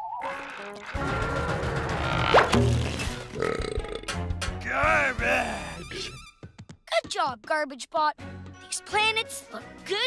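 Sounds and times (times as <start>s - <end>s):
background music: 0.0s - 10.0s
gurgling comic burp: 3.3s - 4.1s.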